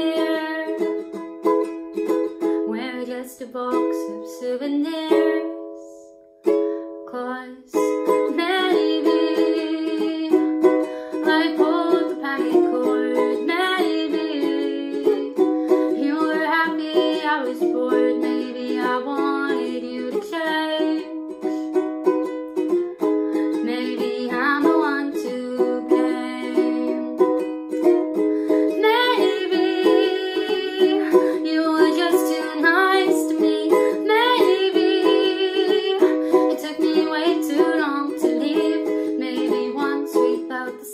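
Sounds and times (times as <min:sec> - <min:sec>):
ukulele strumming chords: 0:00.0 - 0:40.9.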